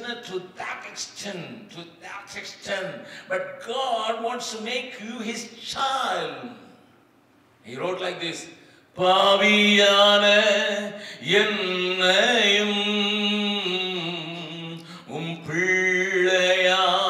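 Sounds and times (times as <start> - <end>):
man singing a worship song: 0.0 - 6.7, 7.7 - 17.0.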